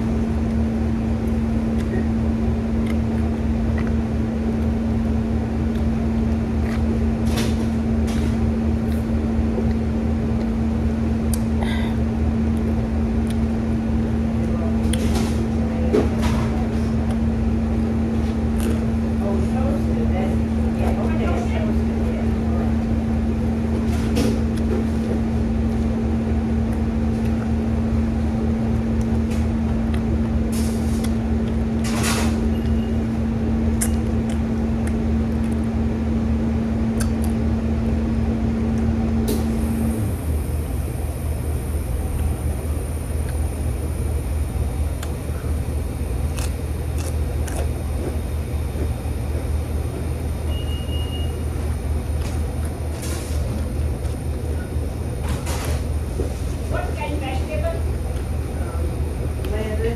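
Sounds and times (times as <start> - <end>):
low machine hum: 0.0 - 59.9
mid-pitched drone: 38.8 - 46.2
crunching potato chips: 46.2 - 47.8.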